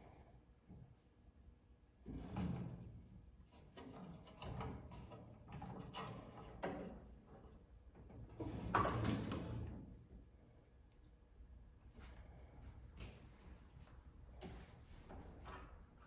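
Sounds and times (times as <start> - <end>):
screwdriver scraping and rattling metal: 3.4 - 7.0.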